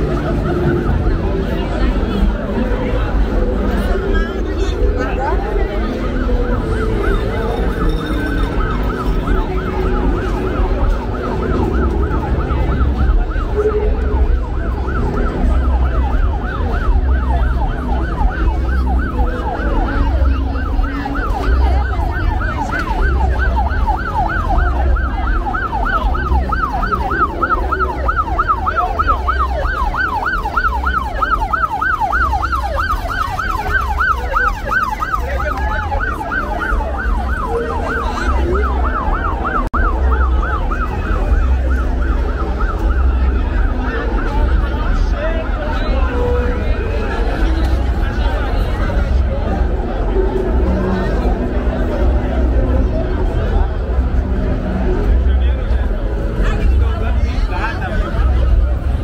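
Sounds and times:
crowd hubbub: 0.0s - 59.0s
siren yelp wail: 0.0s - 59.0s.

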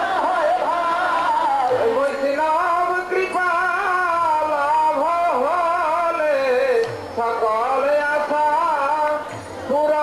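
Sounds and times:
person singing devotional melody: 0.0s - 10.0s.

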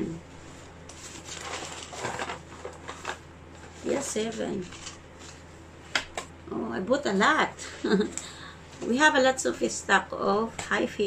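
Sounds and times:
cardboard packets scraping: 0.9s - 5.5s
shopping bag rustling: 0.9s - 5.5s.

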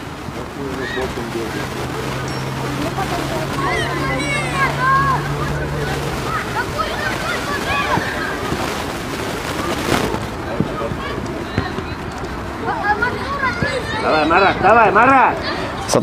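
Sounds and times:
outdoor rush: 0.0s - 16.0s
young footballers shouting: 0.6s - 15.9s.

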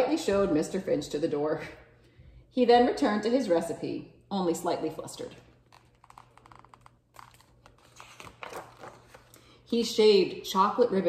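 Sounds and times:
picture book being handled: 5.5s - 9.4s.

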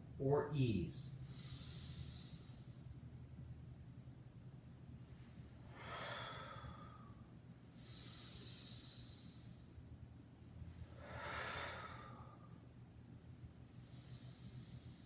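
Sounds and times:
low steady hum: 0.0s - 15.0s
person breathing deeply: 1.2s - 3.0s, 5.6s - 9.8s, 10.9s - 12.6s, 13.6s - 15.0s.

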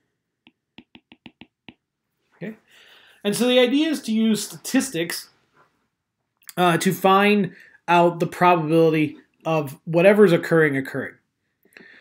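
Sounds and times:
stylus tapping on glass screen: 0.5s - 1.8s.

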